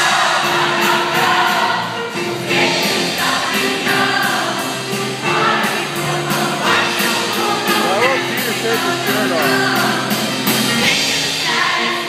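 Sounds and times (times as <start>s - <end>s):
group singing together: 0.0s - 12.0s
backing track with steady beat: 0.9s - 11.7s.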